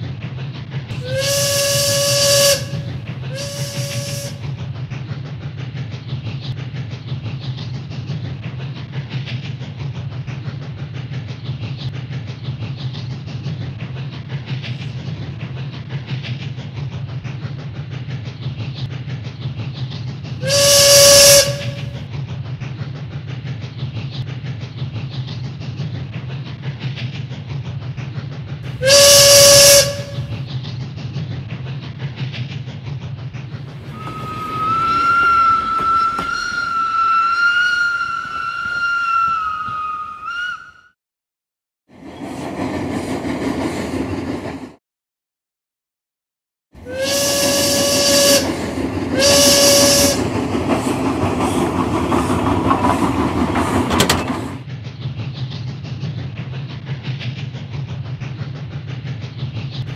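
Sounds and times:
steam train rumbling: 0.0 - 41.0, 41.9 - 44.8, 46.8 - 59.9
steam whistle blowing: 1.0 - 4.4, 20.4 - 22.0, 28.8 - 30.3, 33.9 - 41.0, 46.8 - 48.5, 49.2 - 50.2.

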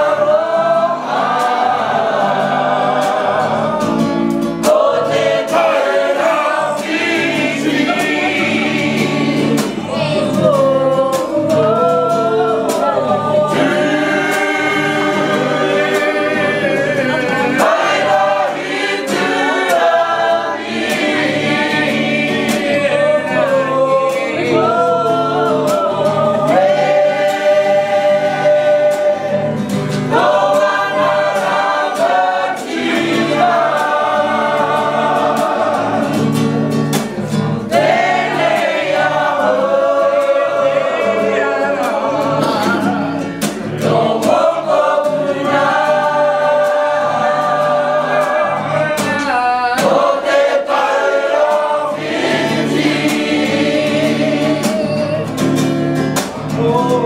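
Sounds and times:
group singing in chorus: 0.0 - 57.0.

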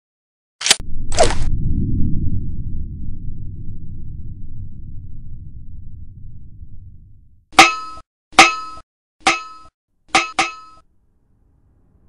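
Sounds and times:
metallic clangs: 7.6 - 10.8.

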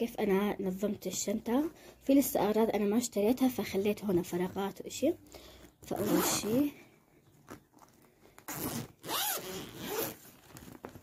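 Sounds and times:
zipper on fabric bag: 5.8 - 6.7, 8.4 - 10.4
fabric flap rustling: 7.4 - 11.0.

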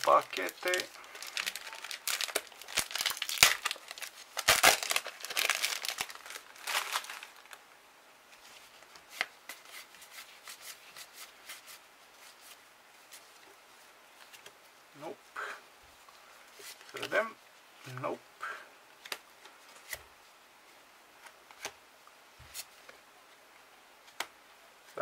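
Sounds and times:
foil wrapper tearing and crinkling: 0.0 - 7.6.

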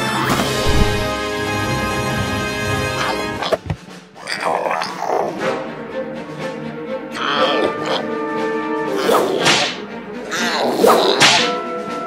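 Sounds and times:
background music: 0.0 - 12.0
cartoon whip cracks: 9.1 - 9.8, 10.8 - 11.6.

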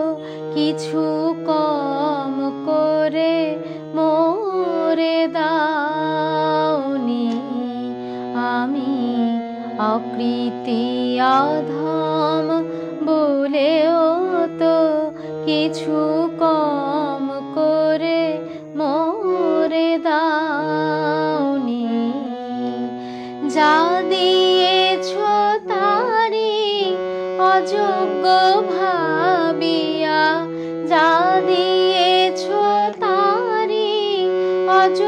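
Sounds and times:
held accompaniment notes: 0.0 - 35.0
woman singing devotional song: 0.0 - 35.0.

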